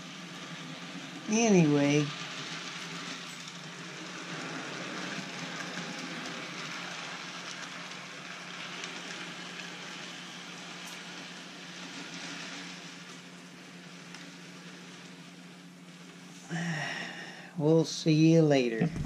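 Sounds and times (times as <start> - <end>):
constant low hum: 0.0 - 19.0
model train wheels rolling: 0.0 - 19.0.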